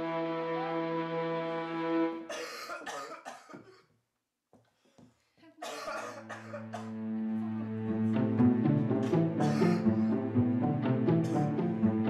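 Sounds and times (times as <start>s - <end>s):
man coughing harshly: 2.3s - 3.9s, 5.6s - 6.9s, 9.4s - 9.9s.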